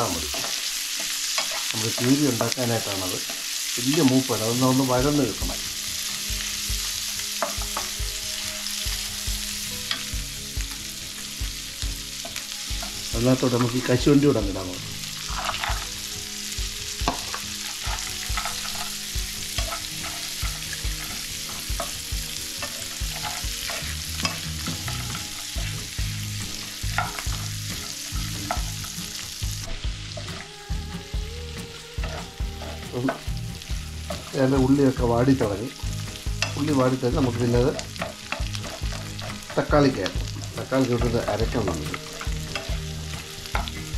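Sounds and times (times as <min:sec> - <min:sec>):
food sizzling in frying pan: 0:00.0 - 0:43.9
wooden spatula scraping pan: 0:22.6 - 0:25.8.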